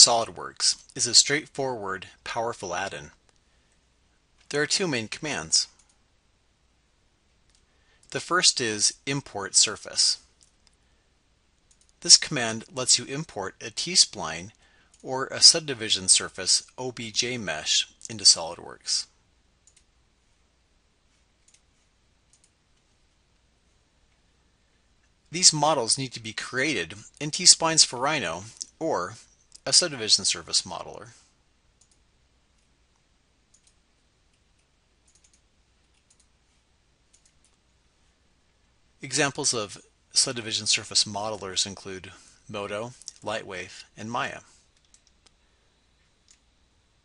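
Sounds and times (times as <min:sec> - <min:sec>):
computer mouse clicks: 0:11.6 - 0:12.0, 0:19.6 - 0:19.9, 0:21.4 - 0:22.9, 0:31.8 - 0:32.0, 0:32.6 - 0:36.3, 0:37.1 - 0:37.6, 0:44.7 - 0:45.4.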